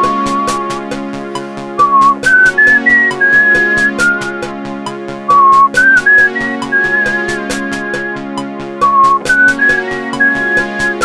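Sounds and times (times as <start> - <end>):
whistle-like lead synth melody: 0.0 - 0.8, 1.8 - 4.6, 5.3 - 11.0
short synth beats: 5.3 - 8.2.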